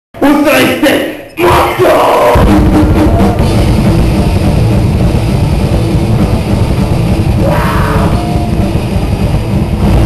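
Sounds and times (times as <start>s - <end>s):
metal band playing: 1.4s - 10.0s.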